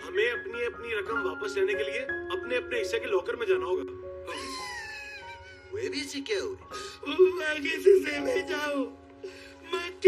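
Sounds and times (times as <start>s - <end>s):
background music: 0.0s - 10.0s
person speaking: 5.7s - 10.0s.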